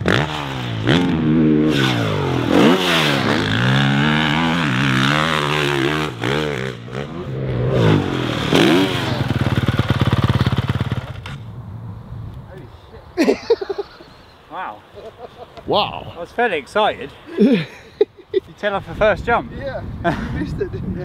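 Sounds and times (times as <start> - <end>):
motocross bike engine revving: 0.0 - 11.4.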